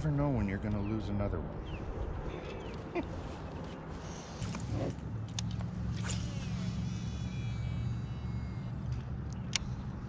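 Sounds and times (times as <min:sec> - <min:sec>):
reel spool whine: 0:05.6 - 0:09.4.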